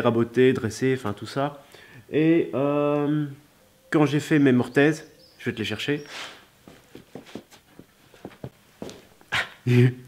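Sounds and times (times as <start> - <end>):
footsteps on concrete floor: 6.1 - 9.2.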